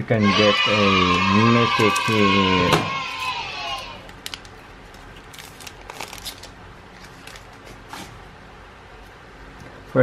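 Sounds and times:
faint hum: 0.0 - 10.0
foil wrapper crinkling: 4.1 - 7.8.

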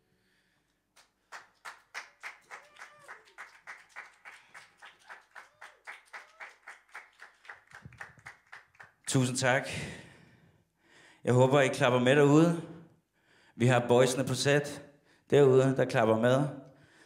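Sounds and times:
people clapping: 0.9 - 9.5.

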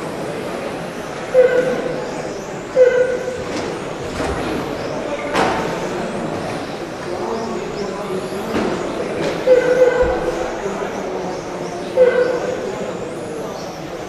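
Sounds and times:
tyre and hall noise: 0.0 - 14.0.

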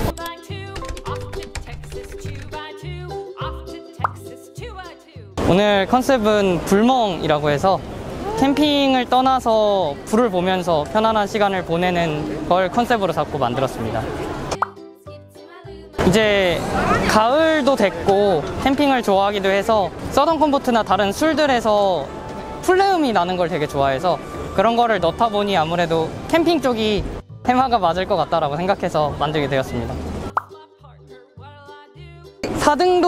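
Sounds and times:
light music: 0.0 - 7.8, 8.5 - 33.0
rising pop sound effect: 4.0 - 4.3, 14.5 - 14.8, 30.3 - 30.6
soft music with low bass: 20.9 - 32.9.

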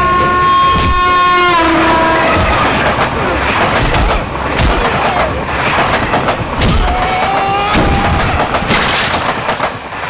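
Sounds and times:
locomotive horn: 0.0 - 2.8
train running rumble: 0.0 - 10.0.

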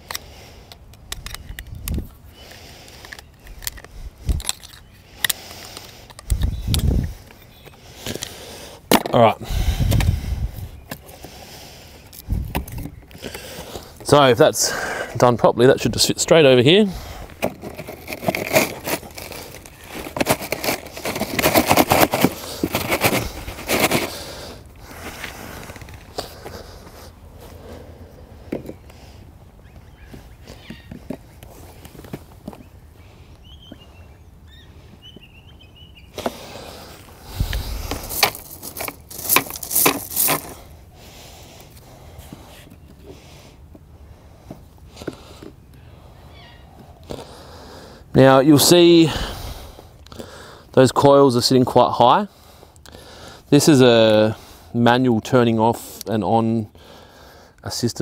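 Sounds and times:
gravel crunching: 0.0 - 33.9, 36.1 - 43.5
plastic box scraping and knocking: 17.4 - 24.1.

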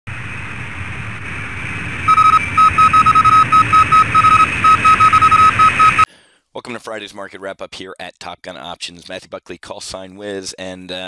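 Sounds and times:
high electronic beeps: 2.1 - 6.1.

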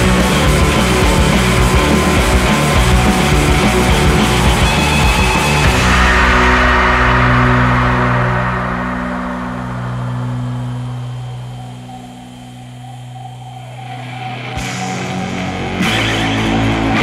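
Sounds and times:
heavy progressive rock: 0.0 - 17.0.

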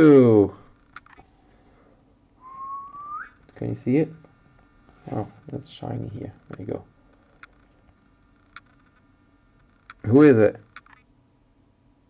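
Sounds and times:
person whistling: 2.4 - 3.4.

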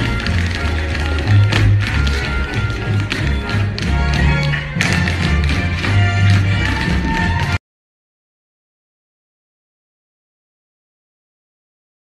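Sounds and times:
tap shoes striking a stage: 0.0 - 7.6.

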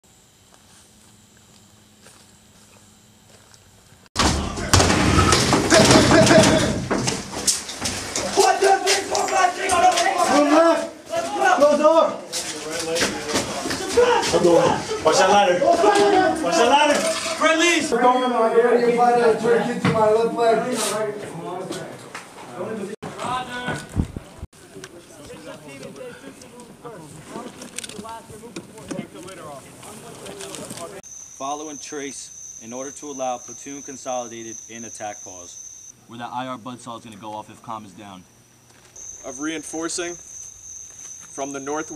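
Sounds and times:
steady outdoor hiss: 0.0 - 4.1, 22.6 - 41.9
soft footsteps: 0.4 - 4.1
people shouting: 4.2 - 6.9, 8.2 - 12.2, 13.6 - 17.9
sharp knocks: 4.2 - 8.3
men calling out and talking: 4.3 - 24.0, 24.6 - 38.4, 39.0 - 40.4, 41.2 - 41.9
steady high tone: 31.0 - 38.4, 39.0 - 41.9.

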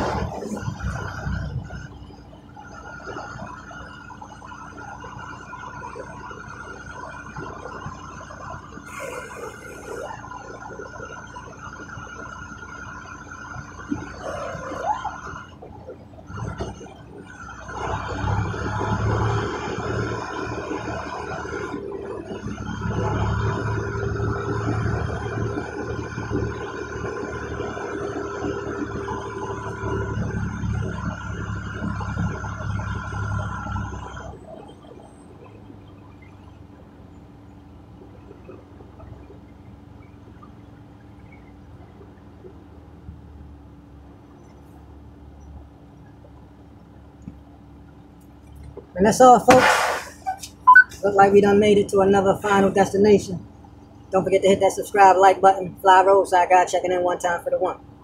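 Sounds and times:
truck diesel engine rumble: 0.0 - 58.0.

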